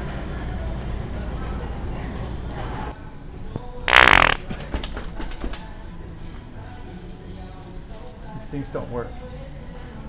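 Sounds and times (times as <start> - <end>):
wet fart sound from prank device: 3.9 - 4.5.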